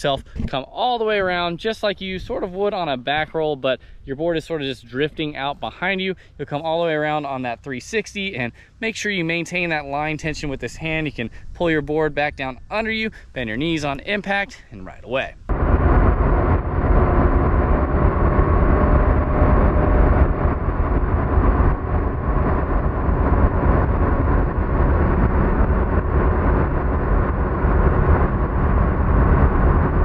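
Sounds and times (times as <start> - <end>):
boat engine rumble: 0.0 - 30.0.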